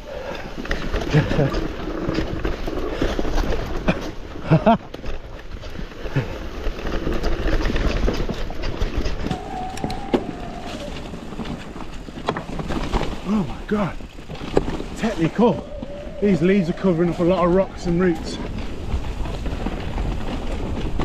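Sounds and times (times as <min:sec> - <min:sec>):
bike tyres rolling and rattling: 0:00.0 - 0:21.0
person laughing: 0:01.1 - 0:01.6, 0:03.9 - 0:04.9.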